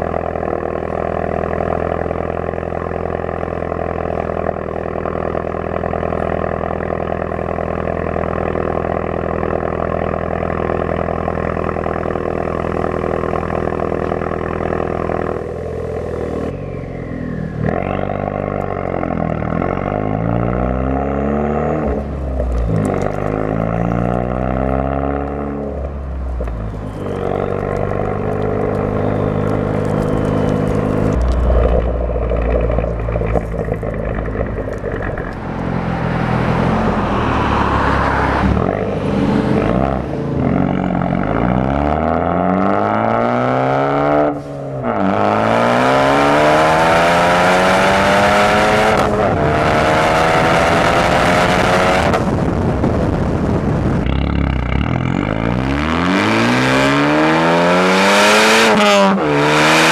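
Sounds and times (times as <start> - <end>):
car exhaust idling drone: 0.0 - 58.0
car engine revving: 0.0 - 59.9.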